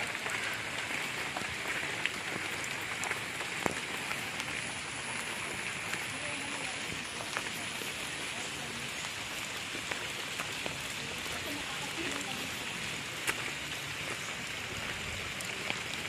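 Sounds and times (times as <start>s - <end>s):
light rain on foliage: 0.0s - 16.0s
water drips ticking: 0.0s - 16.0s.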